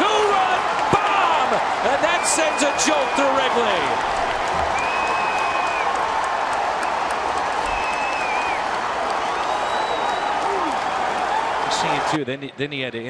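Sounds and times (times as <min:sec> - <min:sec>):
applause: 0:00.0 - 0:12.5.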